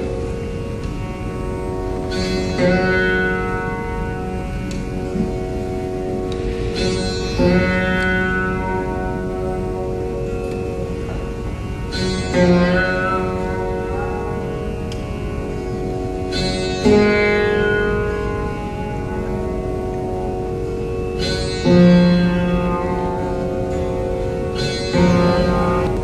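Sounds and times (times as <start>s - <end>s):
plucked string instrument gliding notes: 0.0s - 26.0s.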